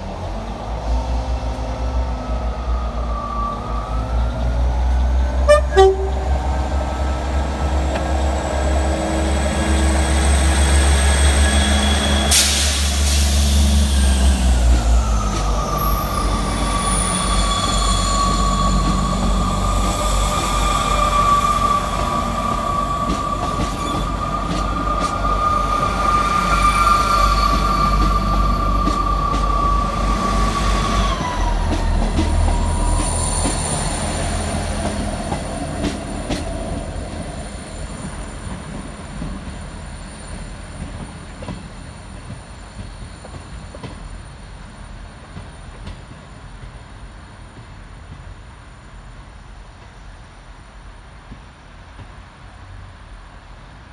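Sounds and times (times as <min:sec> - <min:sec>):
train engine rumbling: 0:00.0 - 0:53.9
train high whine: 0:00.0 - 0:53.9.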